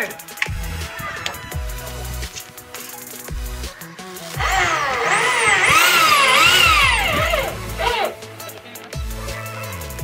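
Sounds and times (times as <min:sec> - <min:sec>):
electric drill boring into metal: 0:04.4 - 0:08.2.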